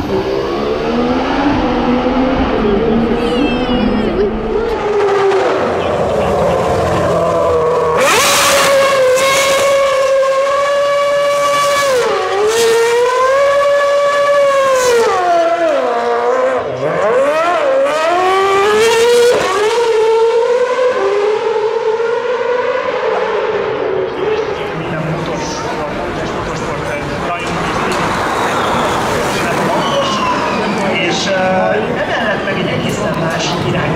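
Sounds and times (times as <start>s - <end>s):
crowd chatter: 0.0s - 8.2s, 24.0s - 33.9s
racing car engine screaming: 0.0s - 32.6s.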